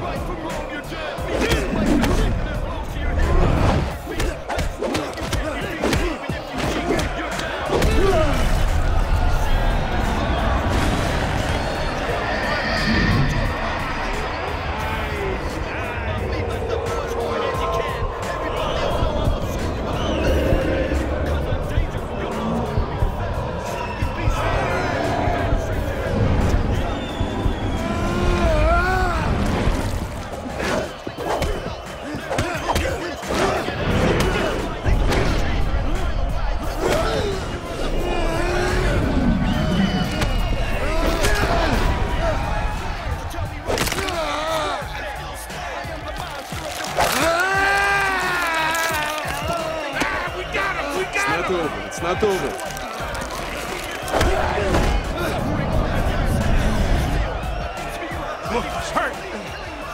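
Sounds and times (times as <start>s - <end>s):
crowd shouting: 0.0s - 59.9s.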